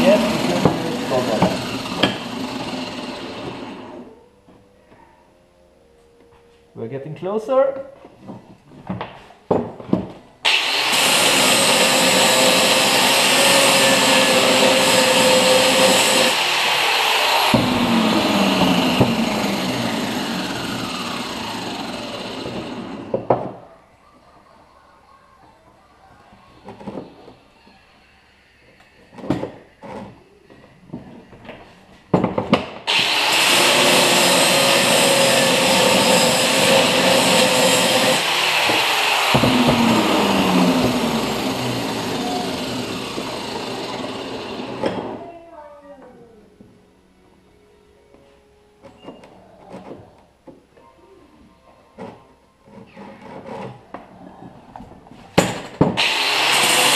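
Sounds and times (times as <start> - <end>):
angle grinder grinding steel: 0.0 - 4.1, 10.5 - 23.1, 32.9 - 45.2, 56.0 - 56.9.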